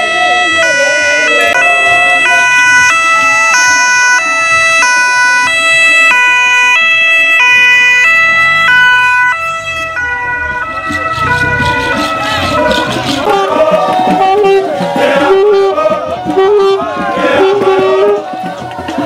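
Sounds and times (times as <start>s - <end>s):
two-tone siren: 0.0s - 19.0s.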